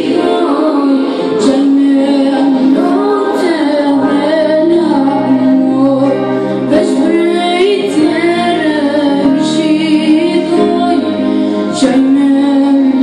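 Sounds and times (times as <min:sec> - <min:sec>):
boy singing devotional song: 0:00.0 - 0:13.0
keyboard chords: 0:00.0 - 0:13.0.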